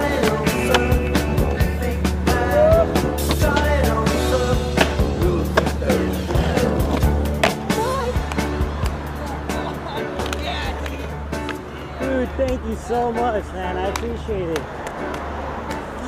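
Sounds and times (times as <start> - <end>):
skateboard clacking and landing: 0.0 - 1.7, 2.7 - 9.0
skateboard wheels rolling: 0.0 - 12.1.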